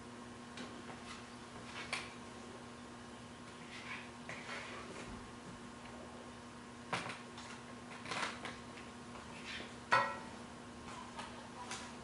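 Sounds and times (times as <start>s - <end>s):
utensil clinking on metal frying pan: 9.9s - 10.3s.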